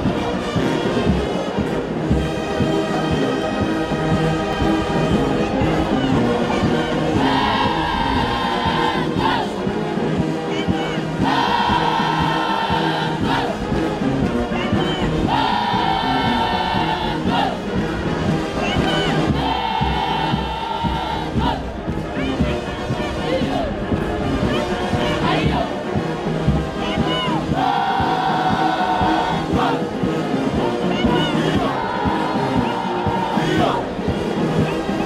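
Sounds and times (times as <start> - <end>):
musical accompaniment: 0.0 - 35.0
group of voices singing: 2.6 - 35.0.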